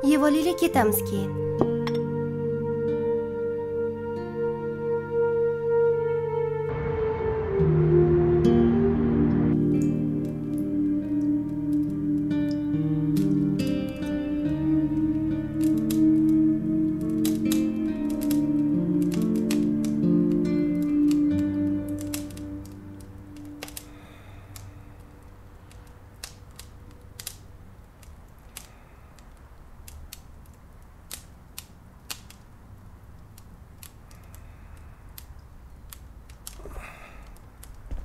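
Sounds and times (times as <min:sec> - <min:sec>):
plucked-string background music: 0:00.0 - 0:25.0
fire crackling and popping: 0:09.5 - 0:38.0.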